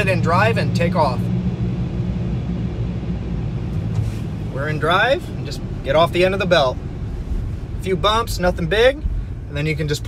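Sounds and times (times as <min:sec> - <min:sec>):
car wash machinery rumble: 0:00.0 - 0:10.0.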